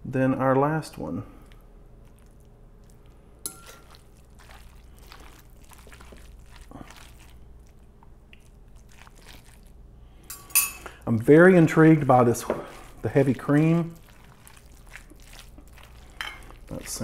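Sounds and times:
squishing meat mixture: 0.7 - 17.0
fork clinking against glass bowl: 3.5 - 4.0, 10.3 - 10.9.

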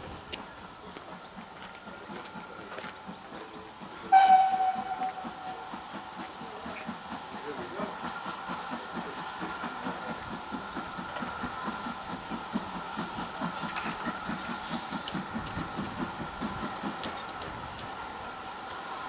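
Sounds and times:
steam hiss: 0.0 - 19.0
steam locomotive exhaust beating: 0.0 - 19.0.

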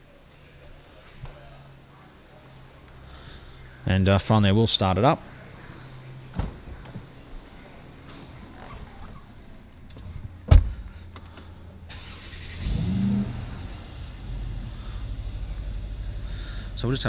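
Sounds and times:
car engine starting and idling: 5.2 - 17.0
loud thump: 10.4 - 10.9.

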